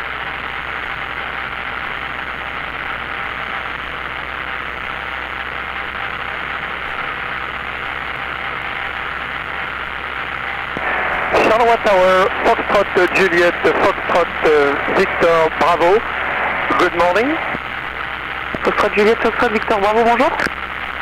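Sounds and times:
light aircraft engine drone: 0:00.0 - 0:21.0.

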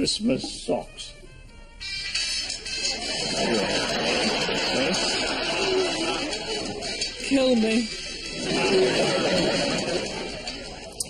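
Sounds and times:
audience laughing: 0:02.9 - 0:11.0.

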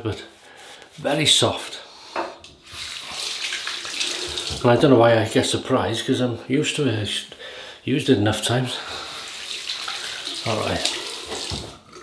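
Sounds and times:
tap running into sink: 0:03.6 - 0:04.8, 0:09.8 - 0:11.8.

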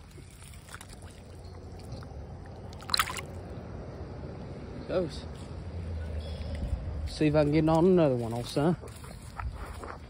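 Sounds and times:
fish splashing into water: 0:00.0 - 0:03.6
low steady rumble: 0:00.0 - 0:10.0.

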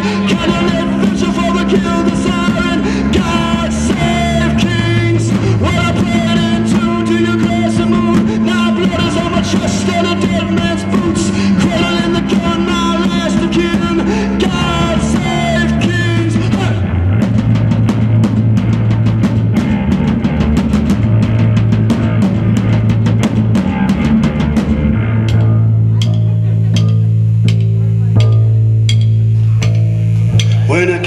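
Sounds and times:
electric bass guitar riff: 0:00.0 - 0:31.0
drum hits with sticks: 0:14.6 - 0:31.0.

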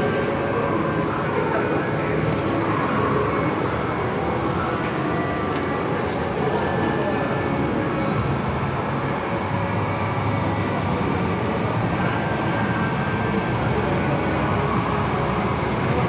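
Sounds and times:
murmur of distant voices: 0:00.0 - 0:16.0.

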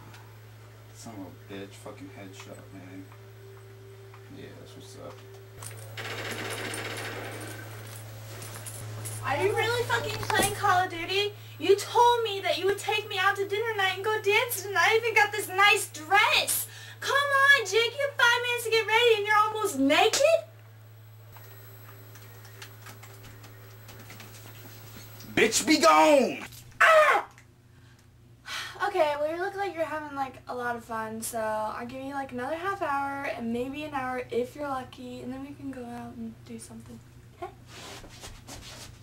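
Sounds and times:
low electrical hum: 0:00.0 - 0:39.0
video game automatic gunfire: 0:06.0 - 0:07.8.

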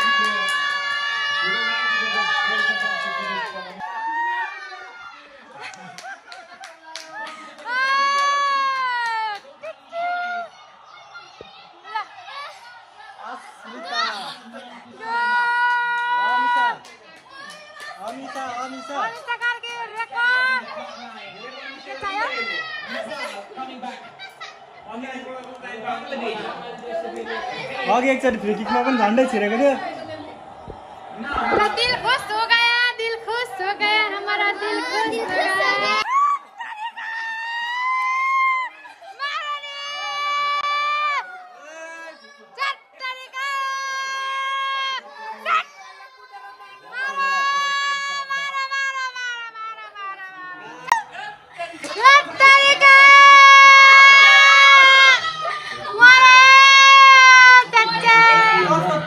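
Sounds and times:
children shouting: 0:00.0 - 0:05.9, 0:06.5 - 0:19.0, 0:20.1 - 0:51.1, 0:51.8 - 0:59.0
hand claps: 0:05.7 - 0:09.5
people talking over one another: 0:07.6 - 0:36.1.

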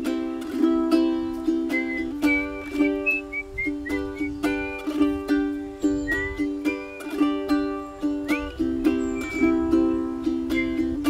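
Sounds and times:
ukulele strumming: 0:00.0 - 0:11.0
whistled melody: 0:00.6 - 0:11.0.

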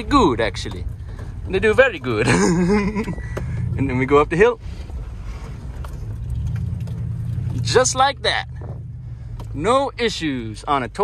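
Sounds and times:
engine drone inside vehicle: 0:00.0 - 0:11.0
road noise: 0:00.0 - 0:11.0.

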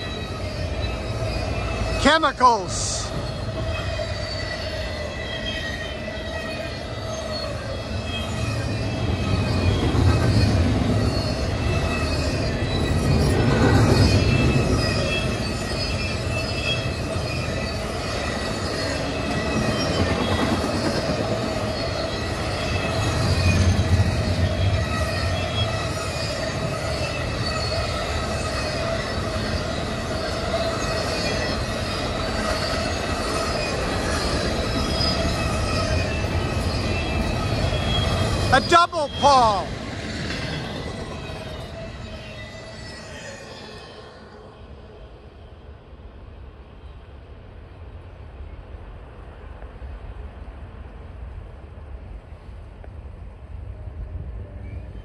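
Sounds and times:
high-pitched wheel squeal: 0:00.0 - 0:02.1, 0:03.0 - 0:44.6
train wheels rumbling on rail: 0:00.0 - 0:55.0.

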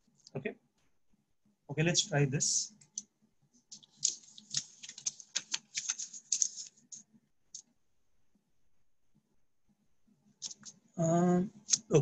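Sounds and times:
paper being handled: 0:03.6 - 0:07.7, 0:10.4 - 0:10.8, 0:11.6 - 0:12.0.

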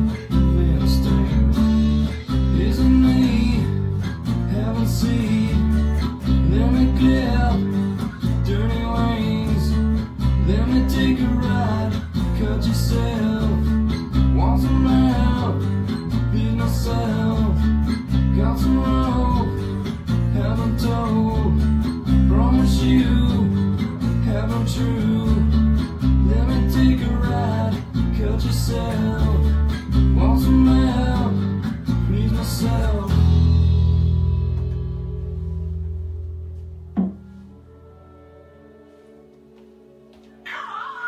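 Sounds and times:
acoustic guitar strumming: 0:00.0 - 0:41.0
recorded rock song: 0:00.0 - 0:41.0.

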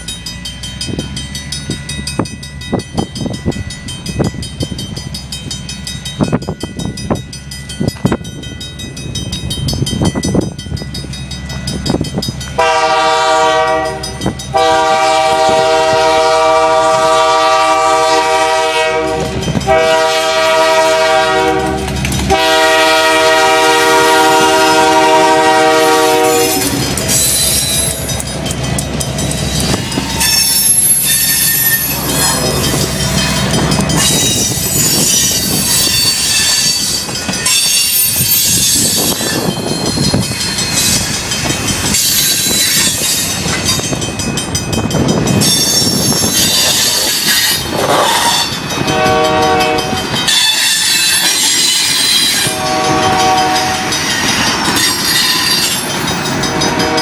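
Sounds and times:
train rumble and clatter: 0:00.0 - 0:57.0
locomotive horn blasts: 0:12.6 - 0:26.8, 0:47.4 - 0:51.2, 0:52.3 - 0:54.0, 0:56.4 - 0:57.0
high-pitched wheel squeal: 0:30.0 - 0:32.7, 0:34.0 - 0:39.4, 0:45.4 - 0:48.6.

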